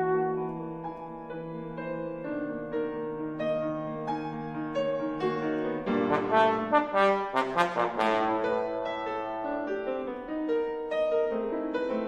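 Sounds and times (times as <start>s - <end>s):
sustained piano: 0.0s - 12.0s
trombone playing short bright notes: 6.1s - 8.6s.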